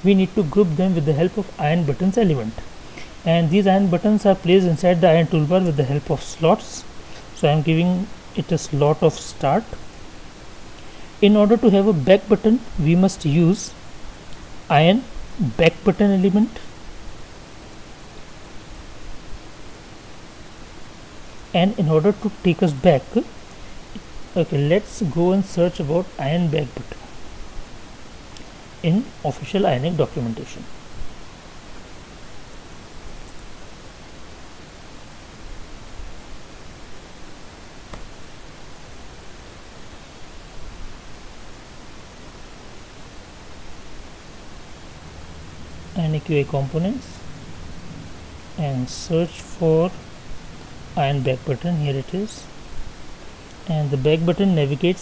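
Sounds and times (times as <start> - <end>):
faint steady hum: 0.0 - 55.0
microphone hiss: 0.0 - 55.0
faint click: 37.9 - 38.1.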